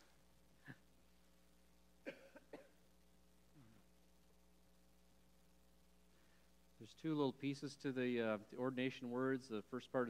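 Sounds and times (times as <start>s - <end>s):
faint steady hum: 0.0s - 10.0s
faint coughs: 2.0s - 2.8s.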